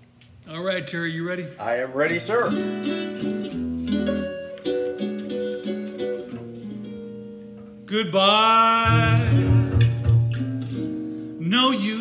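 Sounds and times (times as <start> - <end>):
plucked guitar notes: 2.3 - 11.4.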